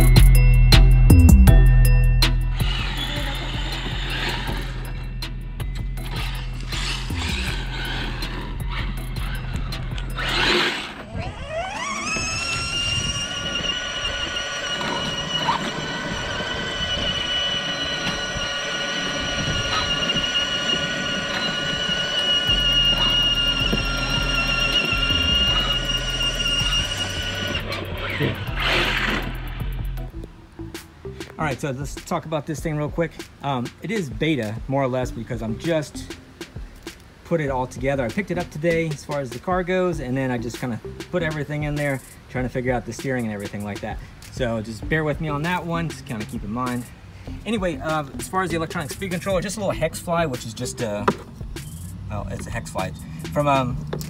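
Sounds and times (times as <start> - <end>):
background music: 0.0 - 10.9, 19.0 - 54.0
electric rc car motor whine: 1.6 - 30.0.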